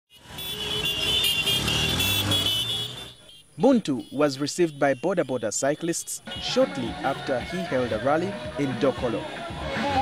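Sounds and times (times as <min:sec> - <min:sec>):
motorcycle engines passing: 0:00.1 - 0:04.2.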